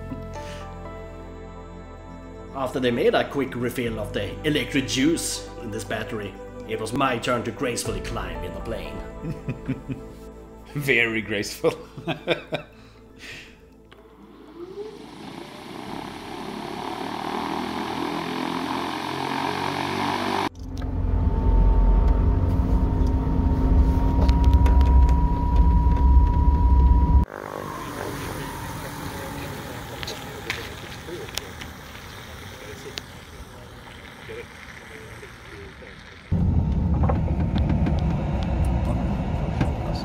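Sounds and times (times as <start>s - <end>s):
steady whine rising in pitch: 13.9s - 40.0s
electric aircraft propeller: 14.0s - 26.2s, 27.2s - 36.5s
loud cabin rumble: 20.5s - 27.3s, 36.3s - 40.0s.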